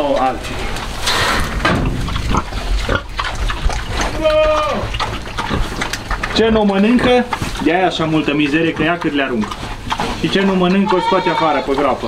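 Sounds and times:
pig munching and rooting: 0:00.0 - 0:12.0.

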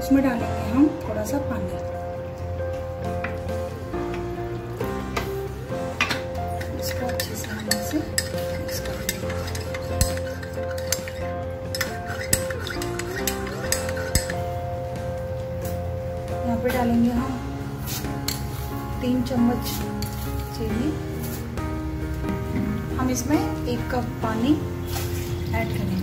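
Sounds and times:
background music: 0:00.0 - 0:26.0
spoon clinking against ceramic cup: 0:06.6 - 0:14.5.

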